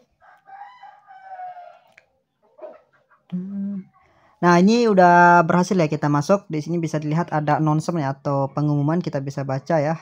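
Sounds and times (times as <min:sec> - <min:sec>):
rooster crowing: 0:00.0 - 0:02.0.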